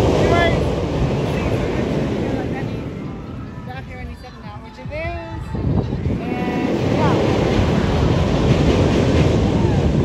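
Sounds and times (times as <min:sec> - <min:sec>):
roller coaster roaring on track: 0:00.0 - 0:04.6, 0:05.2 - 0:10.0.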